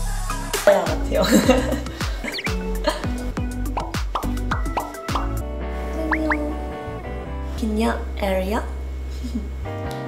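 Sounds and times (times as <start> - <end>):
playful background music: 0.0 - 8.6.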